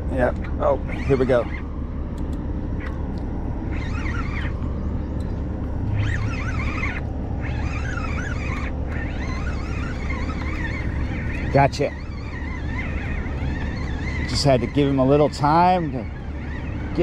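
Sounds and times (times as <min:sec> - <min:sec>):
ship machinery hum: 0:00.0 - 0:17.0
birds singing: 0:00.2 - 0:01.9, 0:02.6 - 0:17.0.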